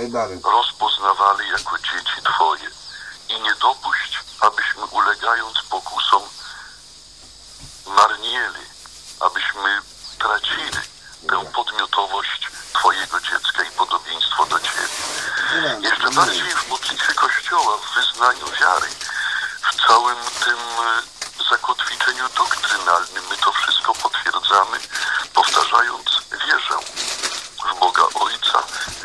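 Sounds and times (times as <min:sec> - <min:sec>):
radio speech: 0:00.0 - 0:06.9, 0:07.8 - 0:27.0, 0:27.6 - 0:29.0
steady hiss: 0:00.0 - 0:29.0.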